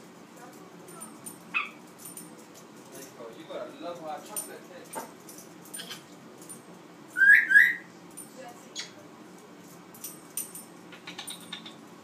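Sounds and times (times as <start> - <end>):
parrot whistling: 7.2 - 7.9.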